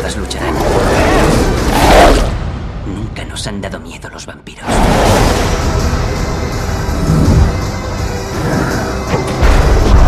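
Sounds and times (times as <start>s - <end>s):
film trailer music: 0.0s - 10.0s.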